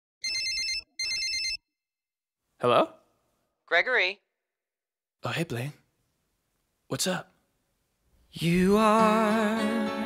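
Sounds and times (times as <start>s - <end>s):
telephone ringing electronic trill: 0.2s - 1.6s.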